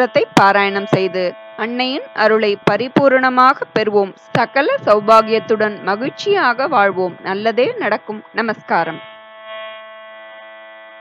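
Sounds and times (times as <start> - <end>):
sustained music drone: 0.0 - 11.0.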